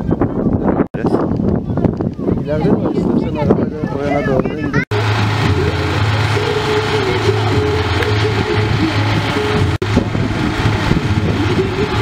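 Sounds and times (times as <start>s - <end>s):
vehicle engine idling: 4.9s - 12.0s.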